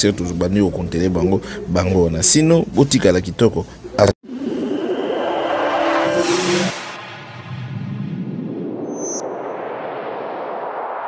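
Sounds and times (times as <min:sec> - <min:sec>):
rushing whoosh: 0:04.3 - 0:11.0.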